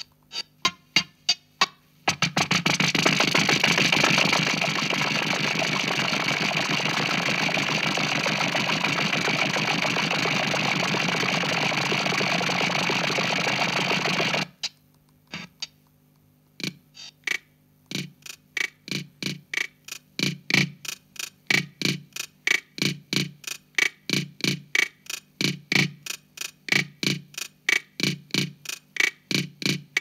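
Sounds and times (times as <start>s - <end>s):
drum machine rhythm with effects wash: 0.0s - 14.7s, 15.3s - 15.7s, 16.6s - 30.0s
dry percussion hits: 2.1s - 10.9s.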